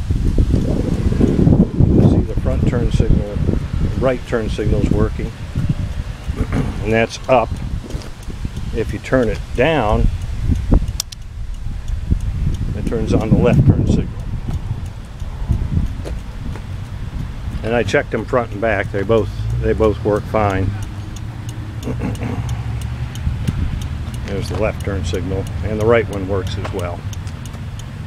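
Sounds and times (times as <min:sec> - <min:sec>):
vehicle engine rumbling: 0:00.0 - 0:28.0
wind buffeting microphone: 0:00.0 - 0:28.0
faint irregular ticks: 0:00.2 - 0:28.0.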